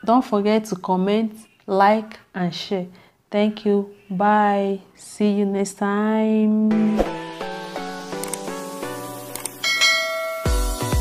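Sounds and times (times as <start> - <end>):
mouse click sound effects: 8.2 - 8.5, 9.3 - 9.6
notification bell ding: 9.6 - 10.6.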